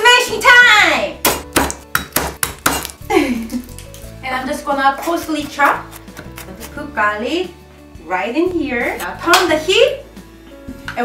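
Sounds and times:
knife smashing on cutting board: 1.2 - 3.1
woman laughing: 3.1 - 3.7.

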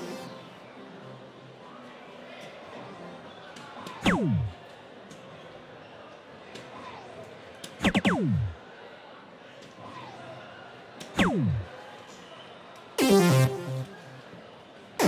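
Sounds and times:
murmur of hall: 0.0 - 15.0
electronic dartboard sweep: 4.0 - 4.6, 7.8 - 8.6, 11.2 - 11.7, 13.0 - 14.0.

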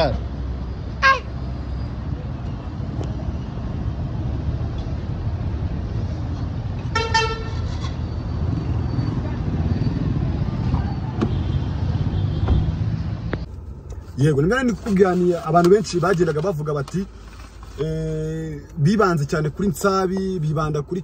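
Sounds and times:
street traffic rumble: 0.0 - 21.0
vehicle horn toot: 6.9 - 8.0.

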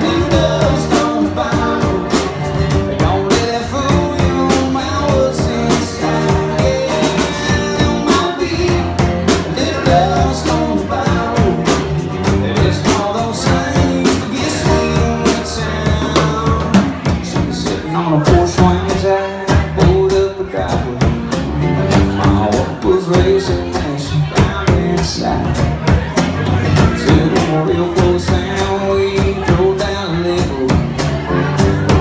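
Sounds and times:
amplified acoustic guitar: 0.0 - 32.0
drum kit steady beat: 0.0 - 32.0
electric bass: 0.0 - 32.0.

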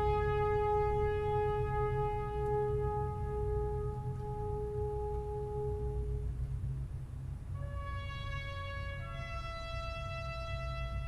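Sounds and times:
orchestra holding soft note: 0.0 - 6.4
low rumble: 0.0 - 11.0.

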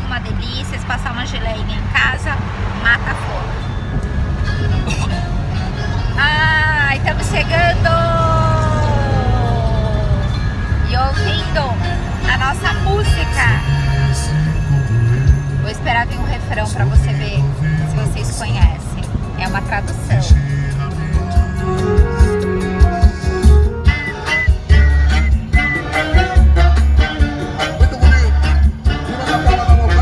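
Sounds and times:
wind and road noise: 0.0 - 30.0
music playing: 3.6 - 30.0.

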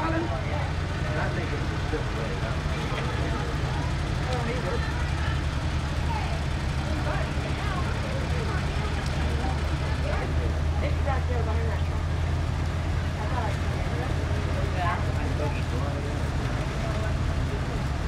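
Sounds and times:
bystanders talking quietly: 0.0 - 18.0
vehicle engines running slowly: 0.0 - 18.0.

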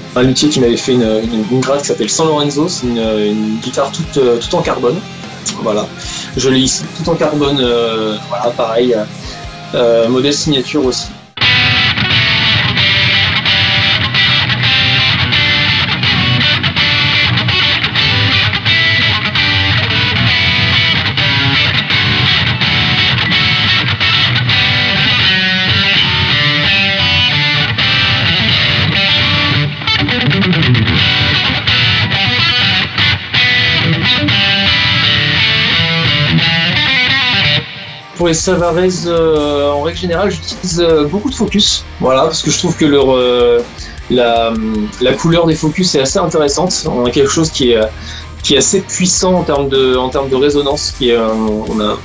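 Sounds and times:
distorted electric guitar: 0.0 - 52.0.

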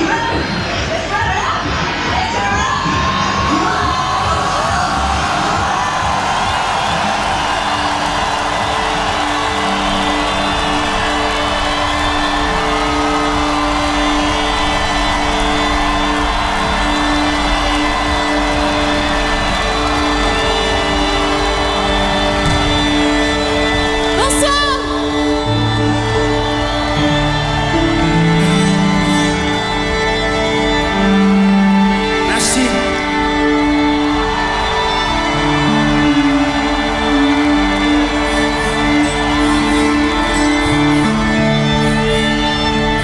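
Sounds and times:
crowd cheering and shouting: 0.0 - 43.0.

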